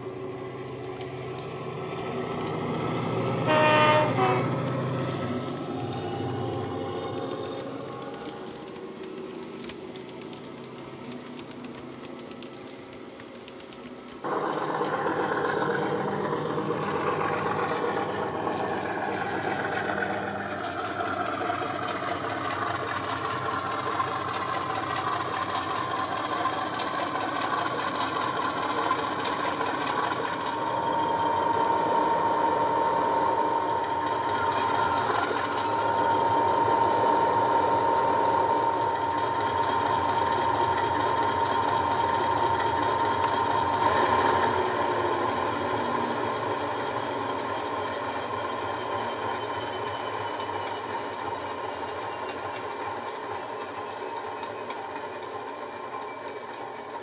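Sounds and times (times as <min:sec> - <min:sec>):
steady whine: 0:00.0 - 0:53.3
model locomotive diesel engine sound: 0:00.0 - 0:57.0
model train running noise: 0:00.0 - 0:57.0.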